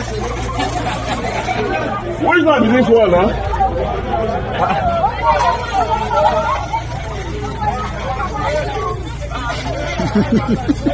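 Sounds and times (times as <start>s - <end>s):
crowd babble: 0.0s - 10.9s.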